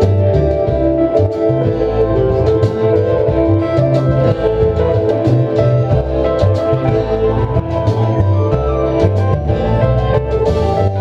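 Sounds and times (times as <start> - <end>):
drums: 0.0 - 11.0
guitars: 0.0 - 11.0
plucked upright bass: 0.0 - 11.0.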